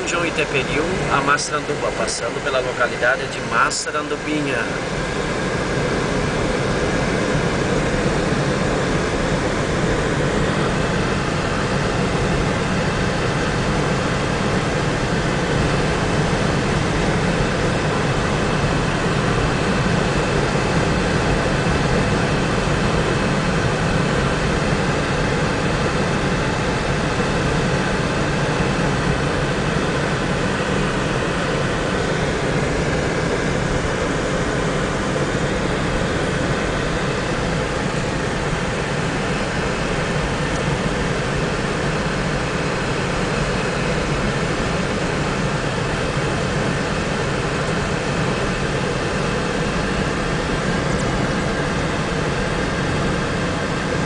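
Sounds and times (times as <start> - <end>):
car engine and tyre noise: 0.0 - 54.0.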